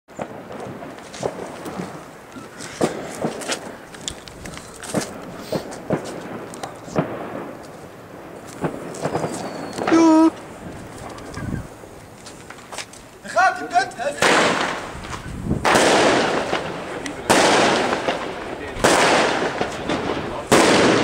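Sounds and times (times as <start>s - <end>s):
background hubbub: 0.1s - 21.0s
firecrackers banging: 0.1s - 21.0s.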